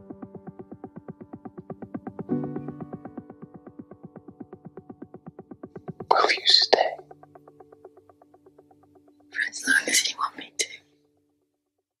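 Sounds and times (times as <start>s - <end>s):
soundtrack music: 0.0s - 11.2s
person whispering: 6.1s - 7.0s, 9.4s - 10.8s.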